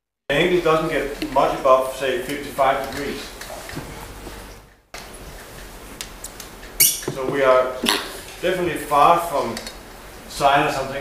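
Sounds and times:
steady recording hiss: 0.3 - 11.0.

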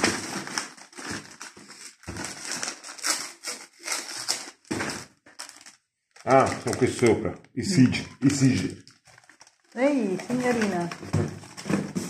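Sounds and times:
plastic and paper crinkling: 0.0 - 12.0.

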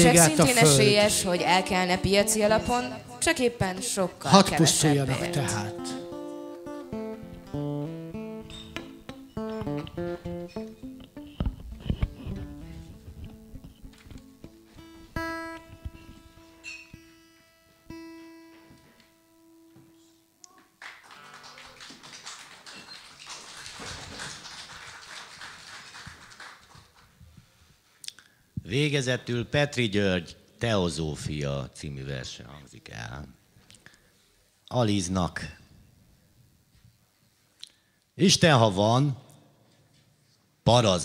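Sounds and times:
guitar picking slow melody: 0.0 - 20.3.

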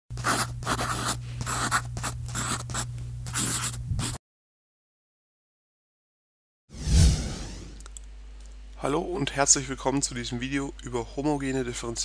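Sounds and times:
chalk scratching on chalkboard: 0.2 - 4.2.

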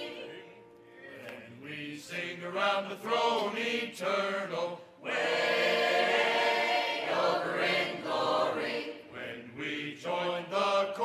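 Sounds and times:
choir singing a hymn: 0.0 - 11.0.

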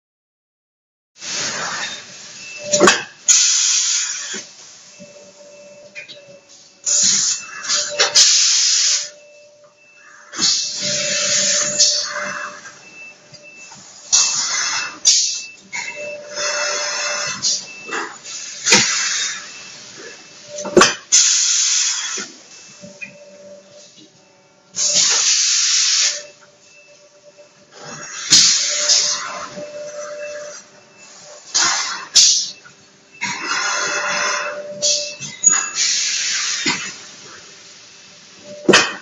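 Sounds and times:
bursts of hissing air: 1.2 - 4.9, 6.8 - 9.2, 10.3 - 13.0, 13.8 - 15.4, 16.3 - 20.2, 21.1 - 22.4, 24.8 - 26.3, 31.0 - 32.6, 33.2 - 37.8.

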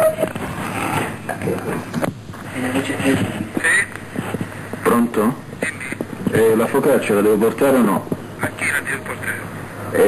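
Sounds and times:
faint distant voices: 0.0 - 10.0
muffled telephone line noise: 0.0 - 10.0.

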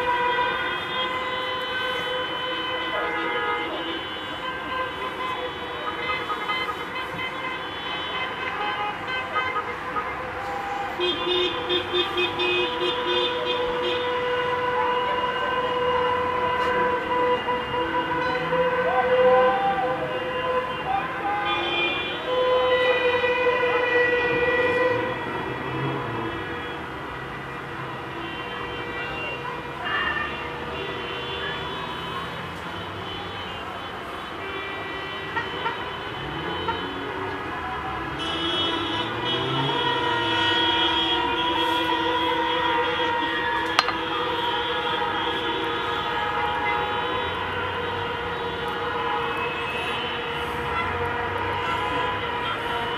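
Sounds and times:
car horns honking: 0.0 - 52.9
passing traffic: 0.0 - 52.9.

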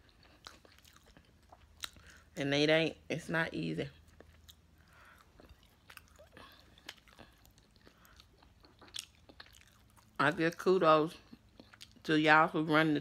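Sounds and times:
person chewing: 0.0 - 2.4, 4.0 - 10.2, 11.2 - 12.0.

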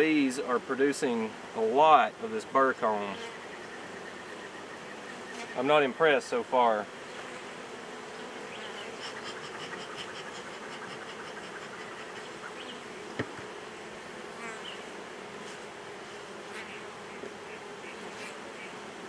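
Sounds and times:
honey bees buzzing: 0.0 - 19.0.

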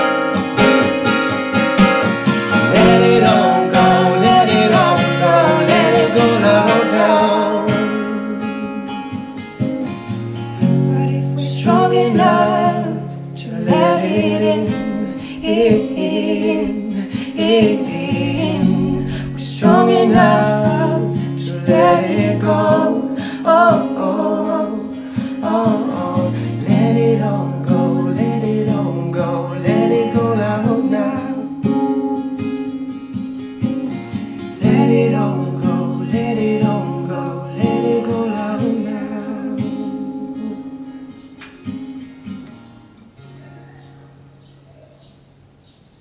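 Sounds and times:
acoustic guitar: 0.0 - 45.3
man and woman singing: 2.5 - 9.0, 10.7 - 31.8, 34.6 - 40.8.

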